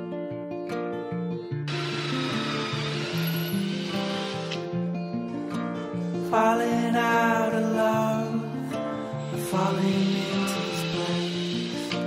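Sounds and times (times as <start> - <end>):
acoustic guitar music: 0.0 - 12.0
cordless drill whining: 1.7 - 4.7, 8.8 - 12.0.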